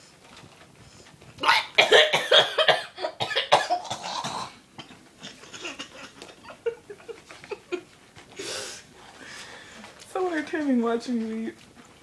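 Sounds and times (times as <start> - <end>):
woman coughing hard: 1.4 - 4.9.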